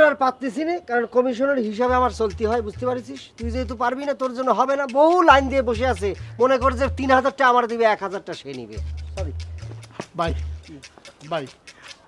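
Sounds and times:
low held bass music: 1.9s - 4.0s, 5.2s - 7.4s, 8.7s - 10.7s.

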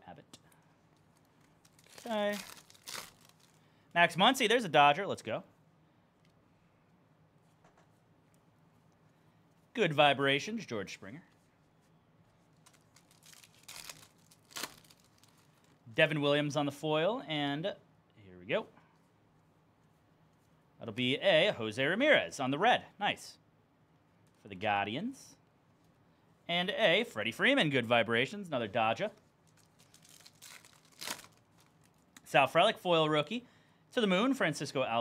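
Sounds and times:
foil wrapper crinkling and tearing: 1.0s - 3.6s, 12.5s - 15.8s, 29.4s - 32.0s.

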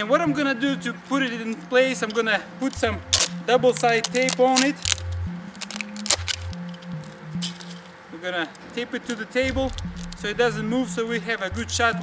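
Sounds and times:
background music: 0.0s - 12.0s
tape peeling and tearing: 2.7s - 8.0s, 8.6s - 10.3s.

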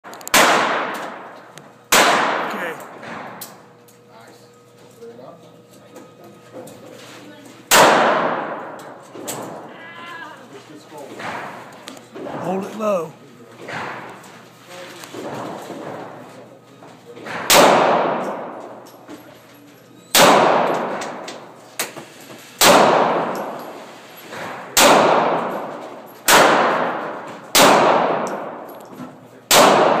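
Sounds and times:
revolver shots echoing indoors: 0.1s - 3.7s, 7.7s - 9.8s, 11.1s - 12.4s, 13.6s - 14.4s, 15.1s - 16.4s, 17.2s - 19.3s, 20.1s - 30.0s
revolver shots echoing: 0.3s - 3.4s, 29.5s - 30.0s.

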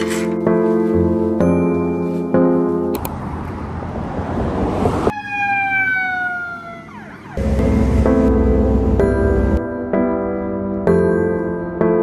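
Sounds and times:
emergency siren wailing: 4.4s - 9.6s.

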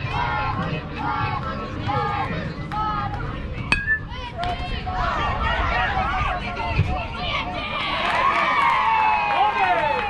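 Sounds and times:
metal bat hitting baseball: 3.7s - 4.2s.

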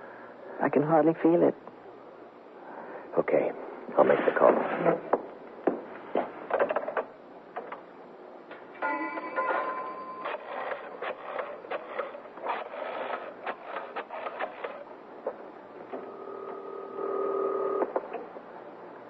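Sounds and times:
telephone ringing tone: 8.8s - 11.0s, 16.0s - 17.9s.

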